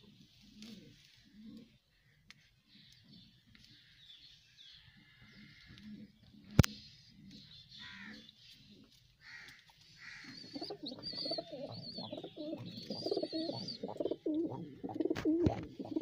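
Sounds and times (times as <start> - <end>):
pigeons cooing: 0.0 - 3.8, 4.8 - 16.0.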